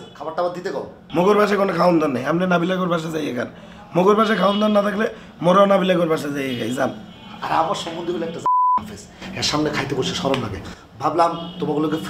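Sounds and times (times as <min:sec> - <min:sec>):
man speaking: 0:00.0 - 0:12.0
censor bleep: 0:08.4 - 0:08.8.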